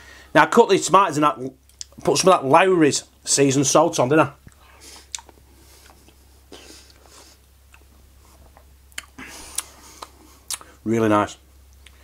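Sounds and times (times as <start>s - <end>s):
soft chewing: 4.4s - 10.8s.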